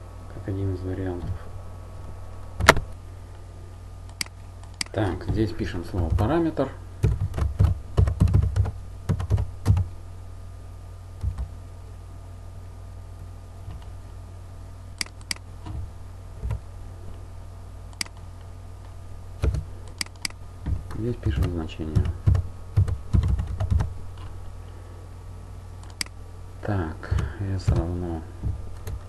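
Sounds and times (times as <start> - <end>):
typing on computer keyboard: 7.0 - 9.8, 19.4 - 23.9.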